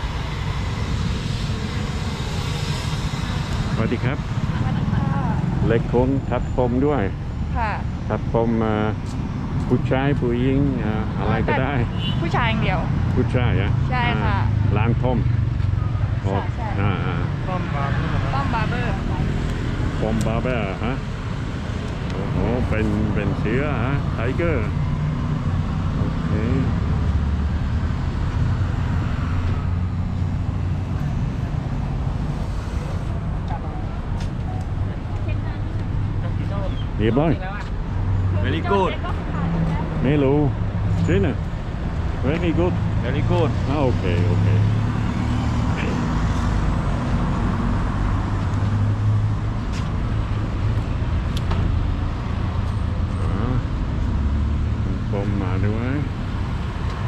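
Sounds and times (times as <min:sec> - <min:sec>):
outdoor noise: 0:00.0 - 0:57.0
road traffic hum: 0:00.0 - 0:57.0.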